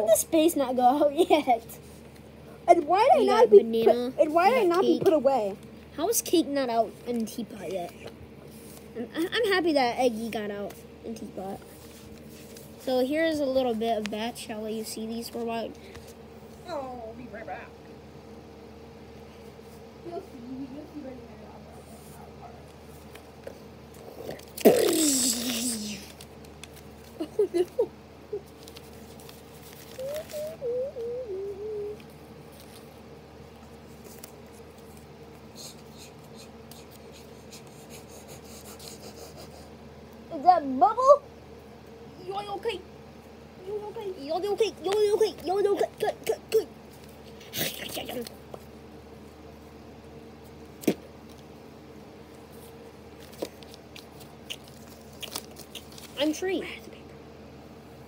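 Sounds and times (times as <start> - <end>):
steady low hum: 0.0 - 58.0
paper crinkling: 24.4 - 30.7, 31.9 - 35.5, 52.6 - 56.3.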